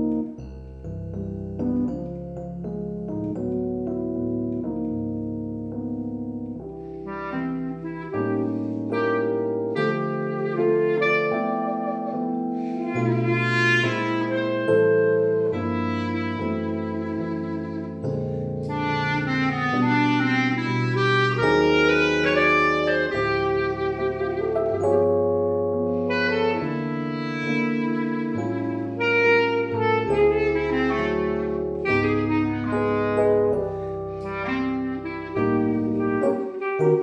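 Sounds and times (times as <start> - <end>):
clarinet playing ballad melody: 0.0 - 37.0
digital piano chords: 0.0 - 37.0.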